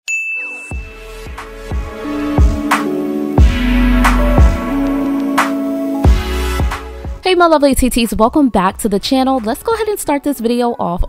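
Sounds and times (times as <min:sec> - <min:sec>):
music with low beat: 0:00.7 - 0:07.3.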